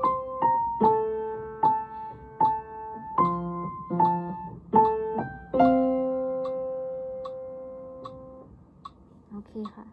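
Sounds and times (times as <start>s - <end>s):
metronome ticking: 3.2s - 9.9s.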